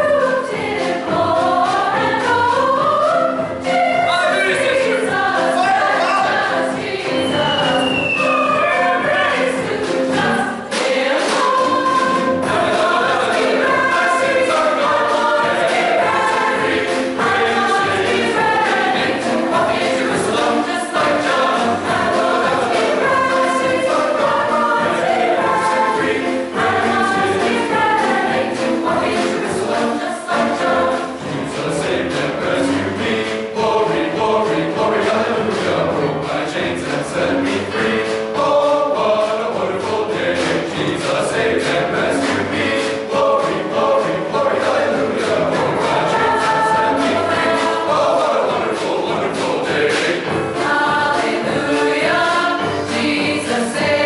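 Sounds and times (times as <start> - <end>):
mixed choir singing sacred song: 0.0 - 54.0.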